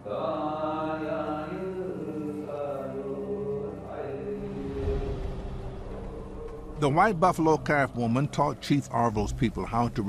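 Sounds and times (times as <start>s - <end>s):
man chanting: 6.6s - 10.0s.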